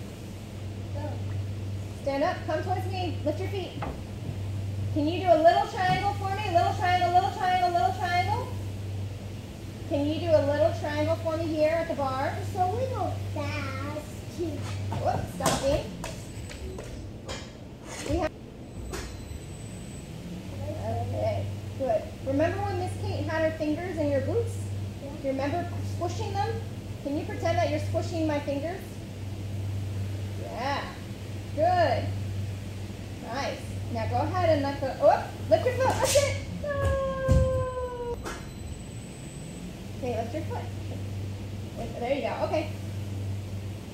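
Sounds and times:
low machine hum: 0.0 - 43.9
woman speaking: 2.0 - 3.8, 4.9 - 8.6, 9.8 - 13.2, 14.9 - 16.1, 20.6 - 29.0, 33.2 - 38.1, 40.0 - 40.8, 41.8 - 42.8
faint high whine: 18.0 - 43.9
young child crying out: 36.6 - 38.2.

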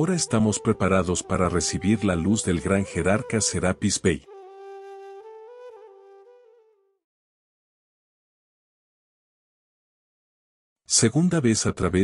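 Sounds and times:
flute music: 0.0 - 7.1.

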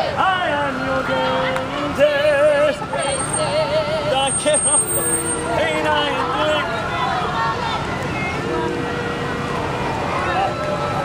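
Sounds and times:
voices singing with vibrato: 0.0 - 9.0.

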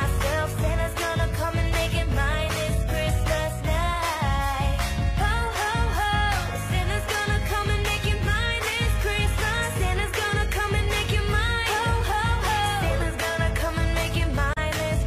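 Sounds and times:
person singing: 0.0 - 15.0
pop christmas song: 0.0 - 15.0.

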